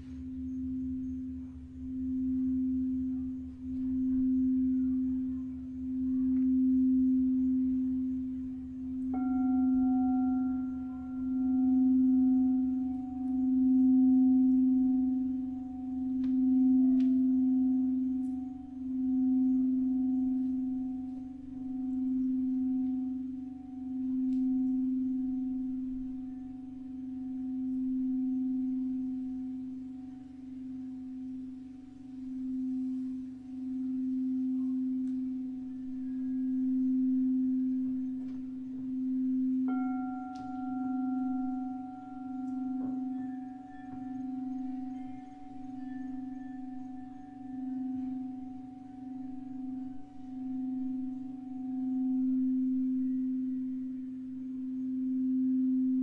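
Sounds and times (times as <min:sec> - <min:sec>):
crystal singing bowl low tone: 0:00.0 - 0:56.0
higher crystal tone ringing: 0:00.0 - 0:56.0.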